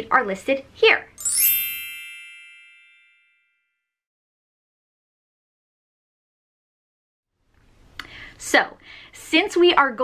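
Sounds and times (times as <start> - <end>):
bright chime: 1.2 - 3.7.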